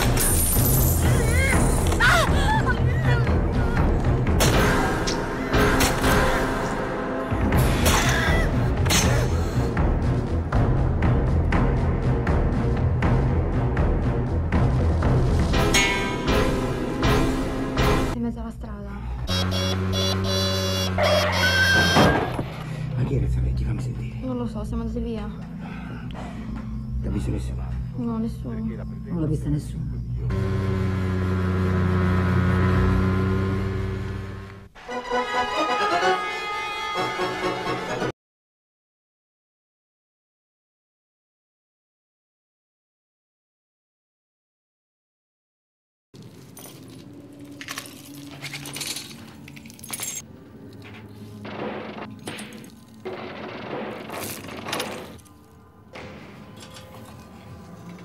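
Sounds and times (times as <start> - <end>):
metal chains jangling: 46.2 - 50.2.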